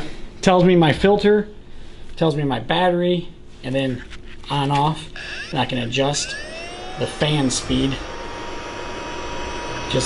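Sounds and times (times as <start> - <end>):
respirator blower fan running: 5.2 - 10.0.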